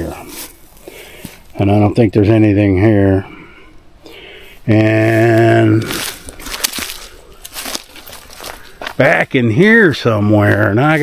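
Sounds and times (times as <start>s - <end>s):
dry leaves rustling and crackling: 5.1s - 9.4s.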